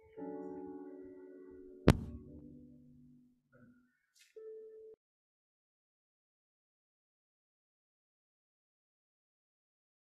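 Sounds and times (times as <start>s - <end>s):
background music: 0.0s - 5.0s.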